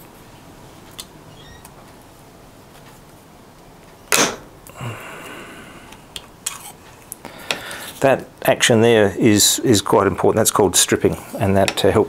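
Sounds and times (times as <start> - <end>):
punch cracking through sheet metal: 4.1 - 4.5.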